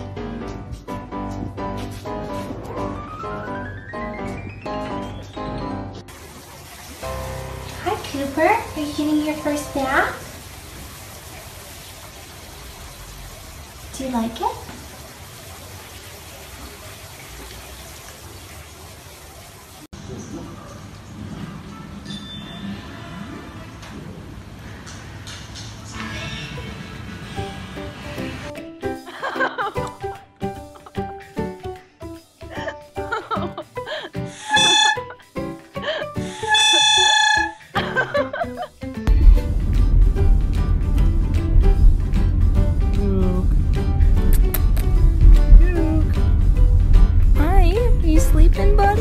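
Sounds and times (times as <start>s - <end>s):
background music: 0.0s - 6.2s, 7.0s - 10.5s, 26.2s - 49.0s
bath water running: 1.4s - 22.0s, 26.7s - 31.6s, 32.3s - 49.0s
toy trumpet horn blasts: 34.4s - 35.2s, 36.3s - 37.7s
low rumble: 39.1s - 49.0s.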